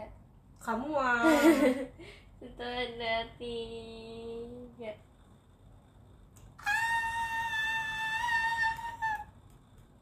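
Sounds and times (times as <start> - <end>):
woman squealing with effort: 6.6 - 9.3.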